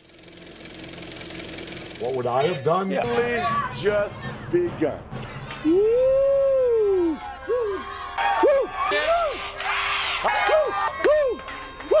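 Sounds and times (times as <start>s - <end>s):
motor running with low hum: 0.0s - 2.6s.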